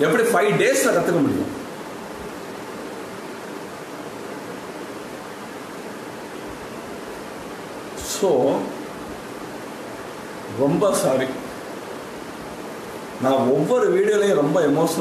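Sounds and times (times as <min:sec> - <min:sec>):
man speaking: 0:00.0 - 0:01.6, 0:08.0 - 0:08.8, 0:10.5 - 0:11.5, 0:13.2 - 0:15.0
background hiss: 0:00.0 - 0:15.0.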